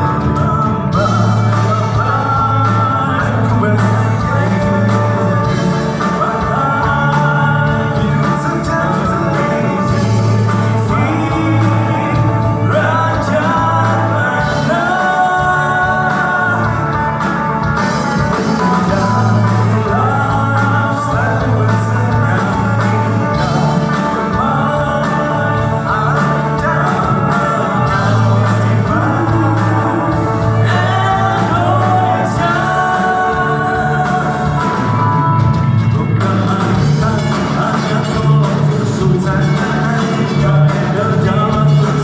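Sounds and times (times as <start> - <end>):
bass guitar: 0.0 - 42.0
drums: 0.0 - 42.0
electric guitars: 0.0 - 42.0
live band playing: 0.0 - 42.0
man singing: 0.0 - 42.0.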